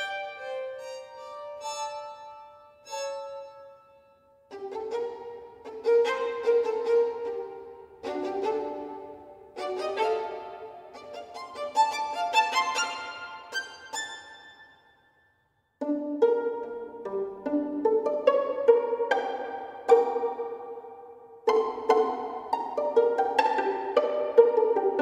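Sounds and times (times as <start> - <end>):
violin pizzicato notes: 0.0 - 14.7, 15.8 - 25.0
violin spiccato notes: 0.0 - 14.9, 15.8 - 25.0.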